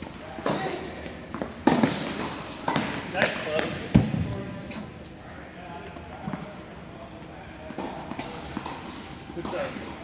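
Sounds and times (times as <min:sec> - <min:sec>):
sneaker squeaking on court: 0:00.6 - 0:03.1
tennis ball bouncing on hard court: 0:01.3 - 0:04.2.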